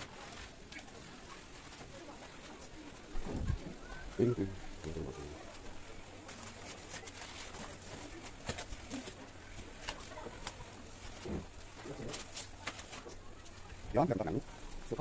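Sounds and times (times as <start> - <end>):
paper and cardboard rustling: 0.0 - 15.0.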